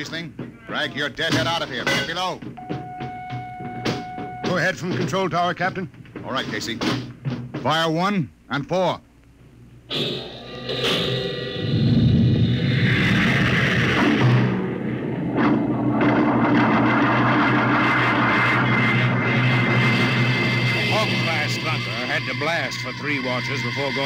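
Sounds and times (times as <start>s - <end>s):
music: 1.7s - 5.2s, 9.9s - 24.0s
sharp hit: 9.9s - 22.0s
rocket jets roaring: 9.9s - 24.0s.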